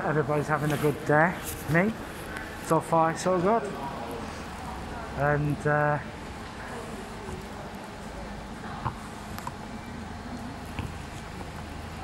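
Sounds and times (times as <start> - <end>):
faint background voices: 2.2 - 12.0
idling buses humming: 3.4 - 12.0.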